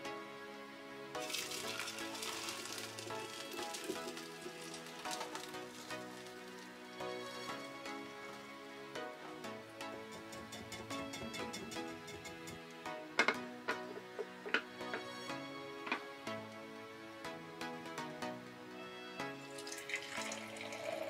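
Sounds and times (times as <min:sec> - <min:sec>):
background music with held notes: 0:00.0 - 0:21.0
liquid splashing through a strainer: 0:01.2 - 0:06.7, 0:19.6 - 0:21.0.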